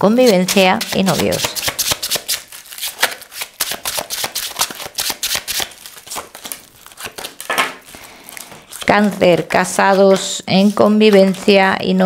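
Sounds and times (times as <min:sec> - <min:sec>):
cards being shuffled: 0:00.2 - 0:11.6.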